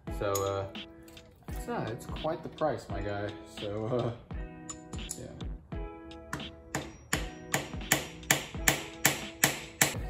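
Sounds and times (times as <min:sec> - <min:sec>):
hammer tapping on metal: 0:06.3 - 0:10.0.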